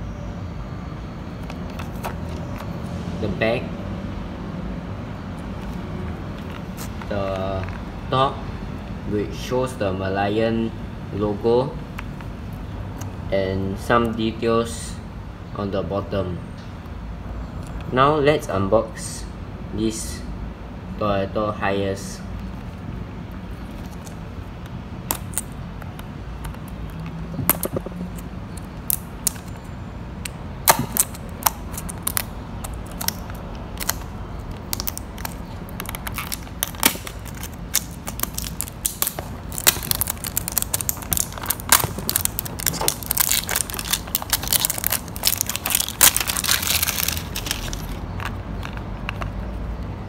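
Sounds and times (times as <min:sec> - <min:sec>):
crackle of card and packaging: 0:30.7 - 0:48.8.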